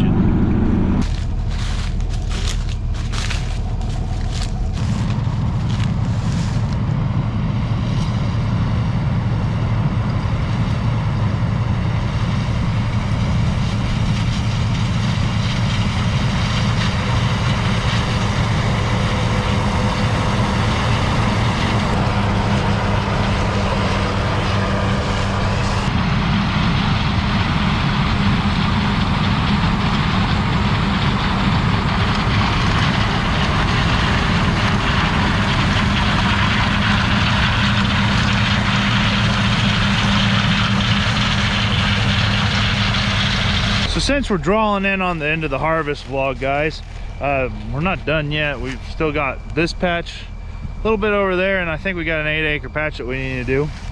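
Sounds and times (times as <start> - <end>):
diesel engine running under load: 0.0 - 53.9
threshing machinery hum: 0.0 - 53.9.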